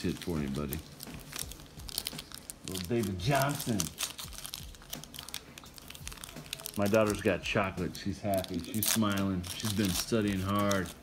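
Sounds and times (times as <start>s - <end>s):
foil wrapper crinkling and tearing: 0.0s - 11.0s.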